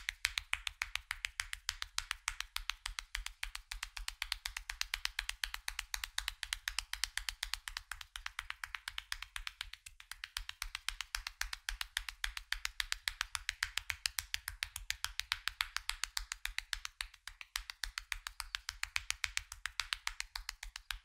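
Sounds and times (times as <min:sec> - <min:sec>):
hand slaps on skin: 0:00.0 - 0:21.0.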